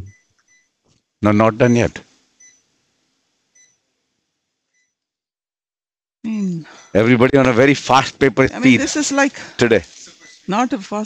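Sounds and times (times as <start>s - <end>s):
patient monitor beeps: 0.0s - 0.8s, 1.6s - 2.7s, 3.6s - 3.8s, 6.6s - 7.2s, 10.2s - 10.6s.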